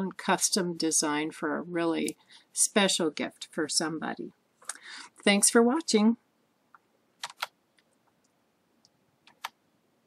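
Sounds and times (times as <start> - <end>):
computer mouse clicks: 6.7 - 9.6.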